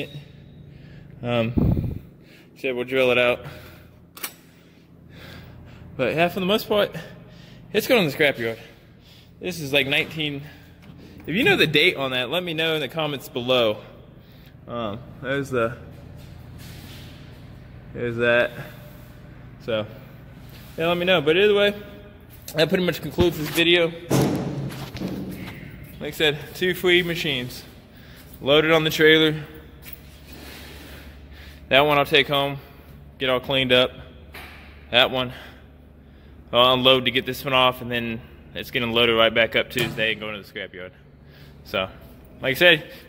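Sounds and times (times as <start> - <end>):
low steady hum: 0.0 - 43.0.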